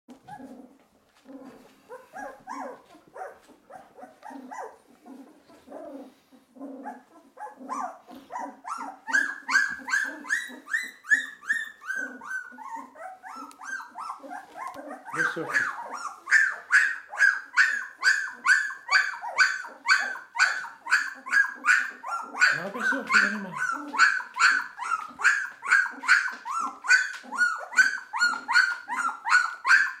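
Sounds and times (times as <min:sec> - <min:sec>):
puppy whining: 0:00.1 - 0:30.0.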